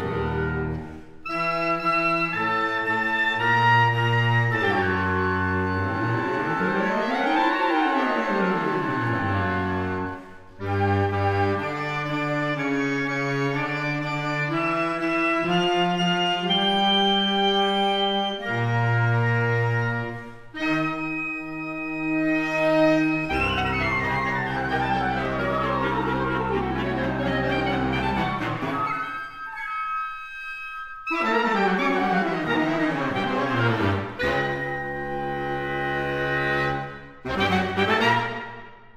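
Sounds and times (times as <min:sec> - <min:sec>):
woodwind ensemble playing: 0:00.0 - 0:38.9.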